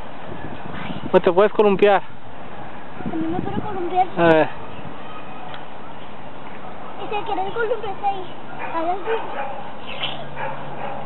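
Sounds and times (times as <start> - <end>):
outdoor background noise: 0.0 - 11.0
dog barking: 8.5 - 11.0.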